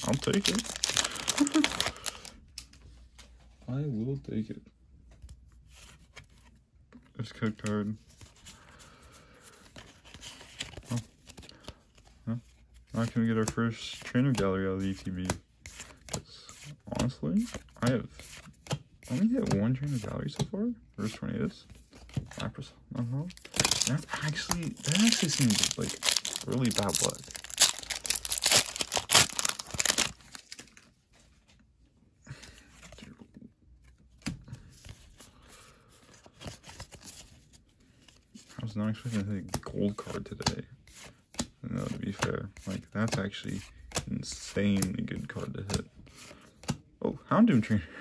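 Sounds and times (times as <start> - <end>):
foil wrapper tearing and crinkling: 0.0 - 2.3, 23.4 - 30.6
cards rustling: 0.0 - 3.5, 5.0 - 31.6, 32.4 - 46.9.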